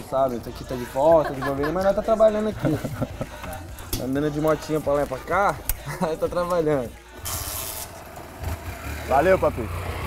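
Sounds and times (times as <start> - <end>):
brief hiss: 7.2 - 8.0
small motorcycle engine running: 8.0 - 10.0.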